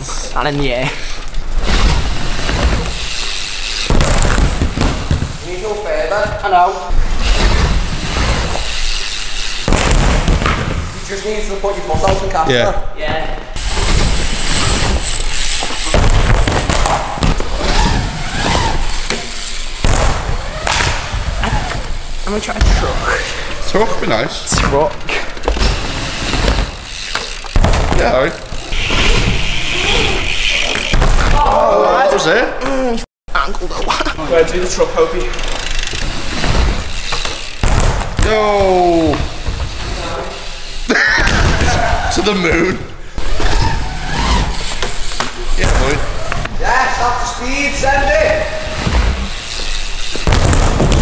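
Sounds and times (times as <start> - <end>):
bike riding fast on ramps: 0.0 - 31.8, 34.2 - 51.0.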